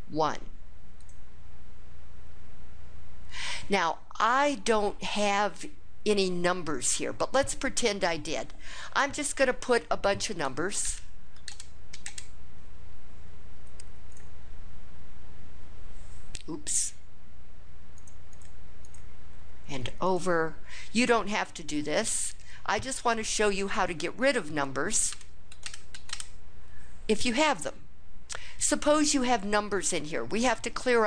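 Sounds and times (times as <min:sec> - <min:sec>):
steady low hum: 0:00.0 - 0:31.0
keystroke clicks: 0:11.4 - 0:12.3, 0:25.1 - 0:26.3.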